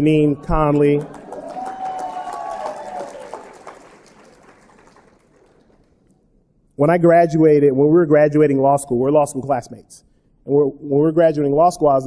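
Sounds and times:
audience clapping: 0:00.5 - 0:06.2
crowd whooping: 0:00.8 - 0:05.6.

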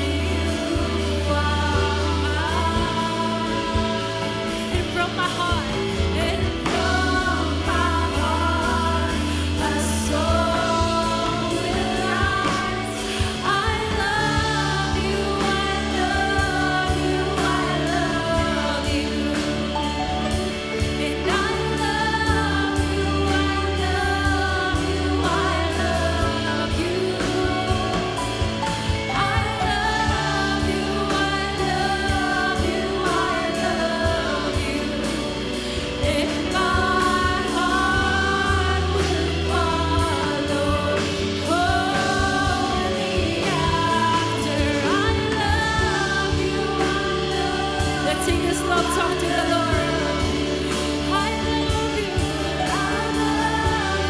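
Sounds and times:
backing singers: 0:00.0 - 0:54.0
electric guitars: 0:00.0 - 0:54.0
steady drum beat: 0:00.0 - 0:54.0
sustained bass: 0:00.0 - 0:54.0
woman singing lead: 0:00.0 - 0:54.0
worship band playing: 0:00.0 - 0:54.0.

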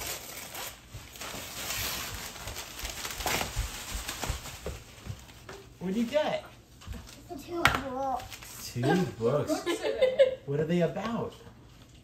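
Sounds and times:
wrapping paper ripping: 0:00.0 - 0:05.4.

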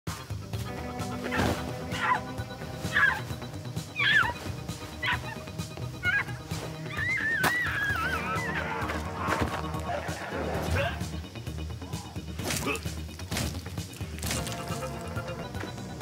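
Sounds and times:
dark film score music: 0:00.1 - 0:16.0
woman wailing: 0:06.0 - 0:08.7.

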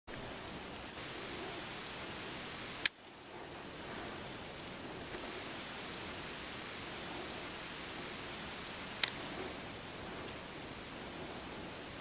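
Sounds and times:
outdoor ambience hiss: 0:00.1 - 0:12.0.

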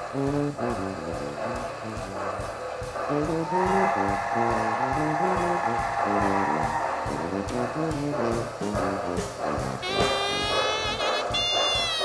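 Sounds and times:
upbeat jazz music: 0:00.0 - 0:02.4, 0:03.0 - 0:12.0
walking bass line: 0:00.0 - 0:12.0.

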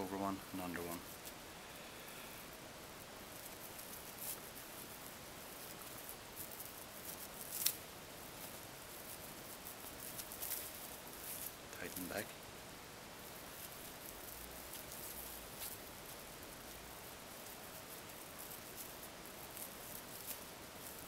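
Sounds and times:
rope rustling and scratching: 0:00.0 - 0:12.4, 0:13.0 - 0:21.0.

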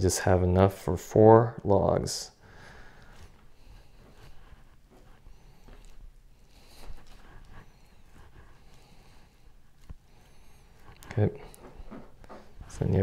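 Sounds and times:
soft taps and squishes of meat: 0:03.0 - 0:13.0.

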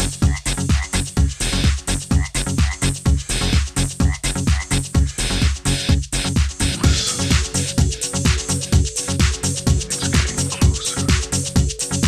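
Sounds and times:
electronic dance music: 0:00.0 - 0:12.0
kick drum beat: 0:00.0 - 0:12.0
croaking frog-like sound: 0:00.2 - 0:00.9, 0:02.1 - 0:02.9, 0:04.0 - 0:04.8.

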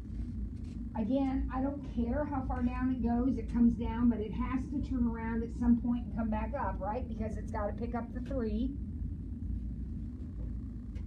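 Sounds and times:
faint steady tone: 0:00.0 - 0:11.0
low room rumble: 0:00.0 - 0:11.0.

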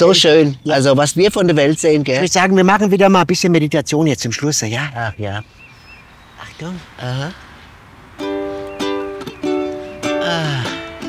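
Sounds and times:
ukulele strummed chords: 0:08.2 - 0:11.0.

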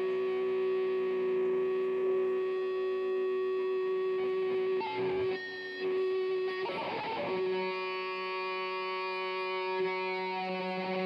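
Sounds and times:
band instruments droning: 0:06.5 - 0:11.0.

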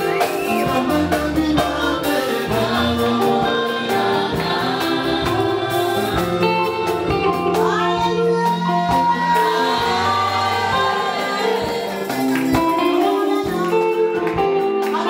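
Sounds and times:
drum kit: 0:00.0 - 0:15.0
electric guitars: 0:00.0 - 0:15.0
keyboard: 0:00.0 - 0:15.0
group singing: 0:00.1 - 0:07.8, 0:08.4 - 0:13.0.

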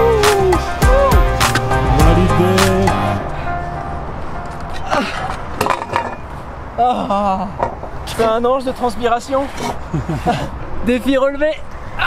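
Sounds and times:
man shouting in triumph: 0:00.0 - 0:01.2.

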